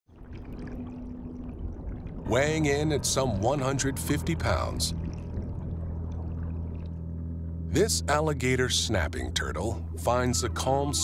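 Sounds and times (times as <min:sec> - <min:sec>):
rumbling underwater wash: 0:00.1 - 0:07.8
faint steady hum: 0:00.2 - 0:11.0.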